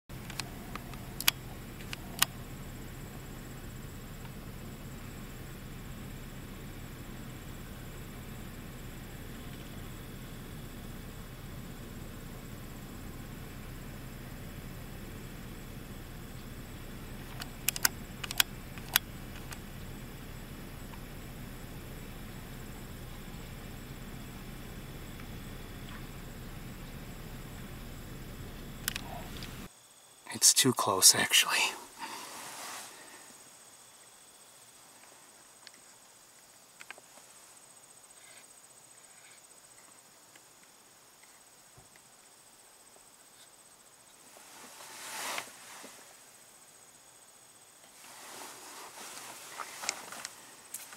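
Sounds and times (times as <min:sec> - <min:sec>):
vehicle engine idling: 0:00.1 - 0:29.7.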